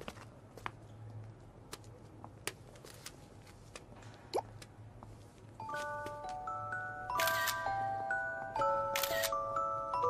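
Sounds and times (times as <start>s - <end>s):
light mallet background music: 5.6s - 10.0s
camera shutter click: 7.2s - 7.6s, 9.0s - 9.4s.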